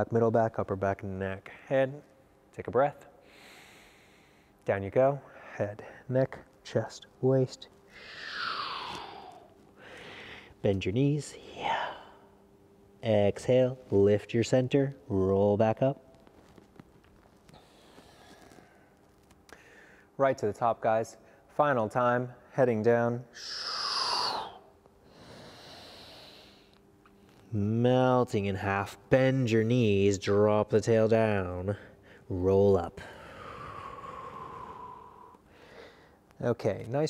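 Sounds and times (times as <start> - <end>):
man breathing out: 7.9 - 10.6, 23.4 - 26.7, 33.0 - 36.2.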